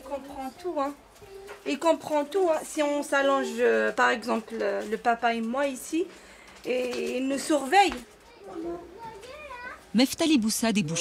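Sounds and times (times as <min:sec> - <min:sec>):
small child speaking: 0:01.2 - 0:01.7, 0:08.2 - 0:09.9.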